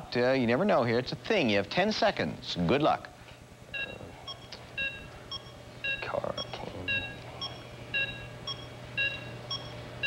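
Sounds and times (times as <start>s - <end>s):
electronic countdown beeps: 3.7s - 9.8s.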